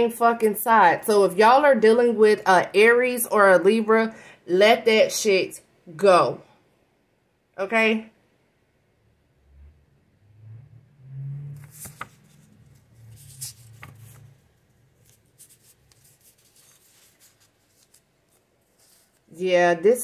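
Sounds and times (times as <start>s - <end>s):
tarot cards shuffling: 11.6s - 19.4s.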